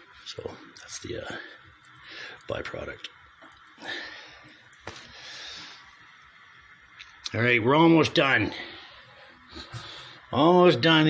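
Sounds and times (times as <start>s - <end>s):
soft breathing: 1.3s - 2.5s, 3.7s - 6.5s, 8.5s - 10.3s.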